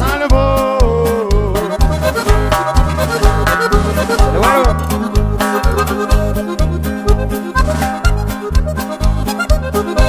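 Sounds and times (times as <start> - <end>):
steady bass beat: 0.1 - 8.9
button accordion melody: 1.1 - 10.0.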